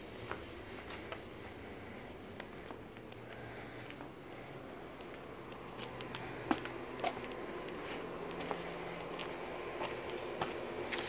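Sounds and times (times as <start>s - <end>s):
faint steady hum: 0.0s - 11.0s
footsteps on concrete: 0.1s - 4.1s, 5.0s - 11.0s.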